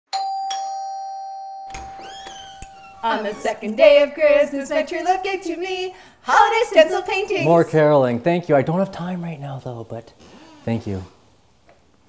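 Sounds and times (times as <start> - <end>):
two-note doorbell chime: 0.1 - 2.9.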